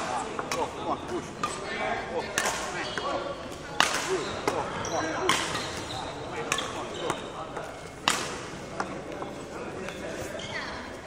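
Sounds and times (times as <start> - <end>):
shuttlecock knocks echoing in hall: 0.0 - 11.0.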